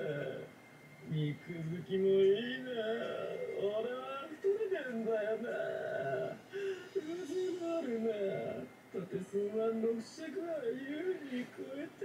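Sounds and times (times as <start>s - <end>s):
person speaking in half-sung voice: 7.0s - 12.0s.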